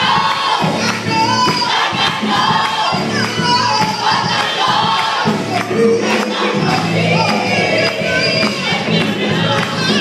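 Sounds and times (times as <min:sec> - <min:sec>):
congregation voices and shouts: 0:00.0 - 0:10.0
gospel choir singing: 0:00.0 - 0:10.0.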